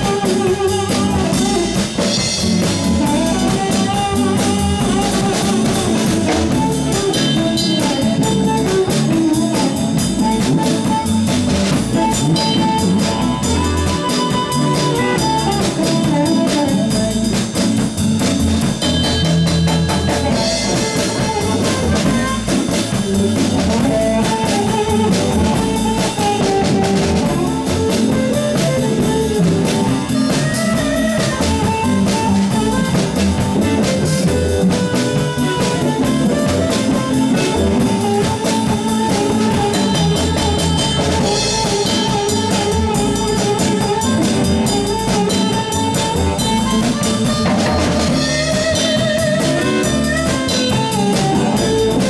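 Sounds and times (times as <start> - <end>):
amplified blues harmonica: 0.0 - 52.0
drum beat: 0.0 - 52.0
electric guitar: 0.0 - 52.0
keyboard: 0.0 - 52.0.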